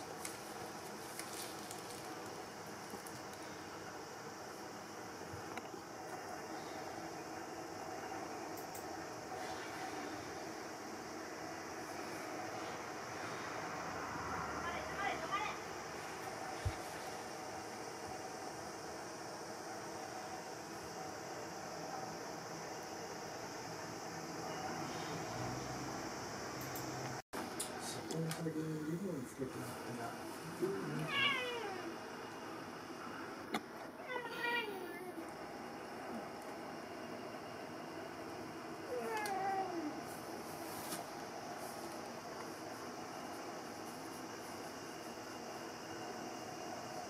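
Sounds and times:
low hiss of room noise: 0.0s - 47.0s
cat meowing: 31.0s - 31.9s.

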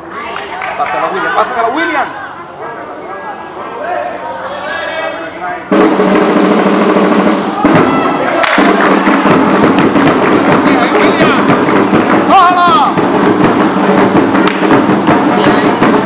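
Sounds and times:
crowd shouting and cheering: 0.0s - 5.9s, 7.2s - 16.0s
sharp percussive beats: 5.7s - 16.0s.

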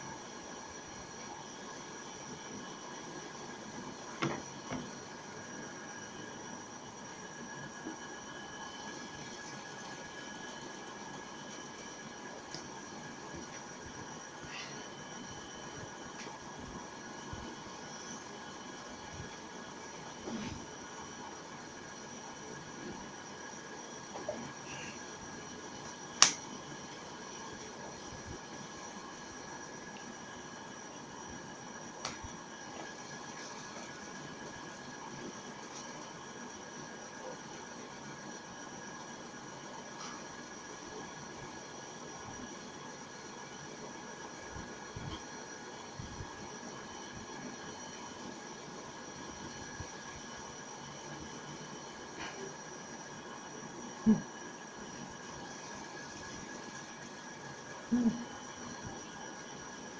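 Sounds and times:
faint high whine: 0.0s - 59.9s
room tone hiss: 0.0s - 59.9s.

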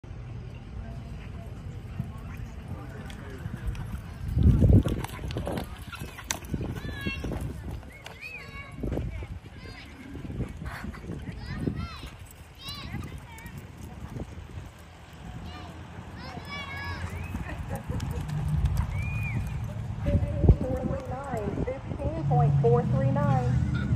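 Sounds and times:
voices: 0.2s - 23.9s
horse galloping on dirt: 1.4s - 22.2s.

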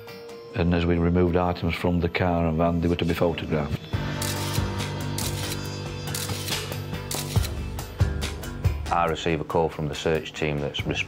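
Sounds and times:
camera shutter clicks and ratcheting: 4.2s - 7.6s.

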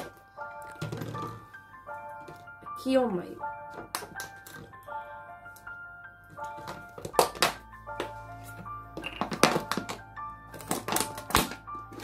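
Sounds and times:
background music: 0.0s - 12.0s
scissors cutting plastic bottle: 6.5s - 7.6s, 9.1s - 12.0s.

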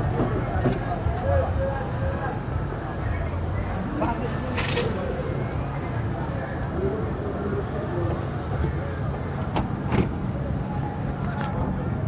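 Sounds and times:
low rumble of motor vehicles: 0.0s - 12.0s.

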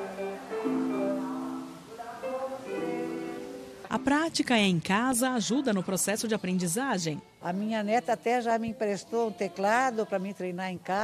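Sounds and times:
electronic keyboard notes: 0.0s - 4.8s.

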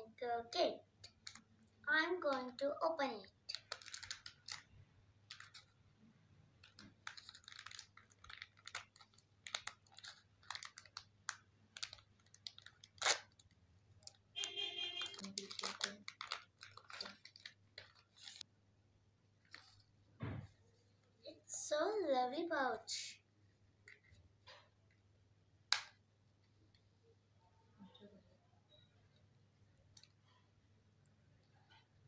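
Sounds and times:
plastic packaging crinkling: 1.0s - 1.6s, 3.5s - 5.8s, 6.5s - 18.4s.

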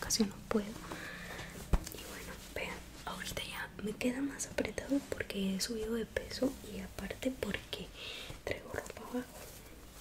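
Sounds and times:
woman whispering: 1.9s - 9.4s.

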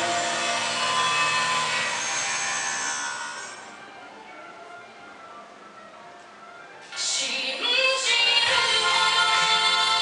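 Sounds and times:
electronic soundtrack over loudspeakers: 0.0s - 10.0s.

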